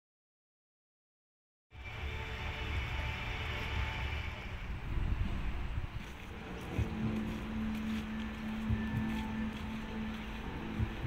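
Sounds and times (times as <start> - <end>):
sustained low musical tone: 1.8 - 11.0
deep heartbeat thumps: 4.8 - 11.0.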